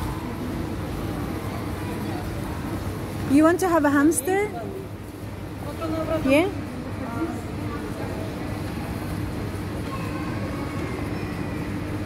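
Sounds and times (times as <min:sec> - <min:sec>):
low mechanical hum and rumble: 0:00.0 - 0:12.0.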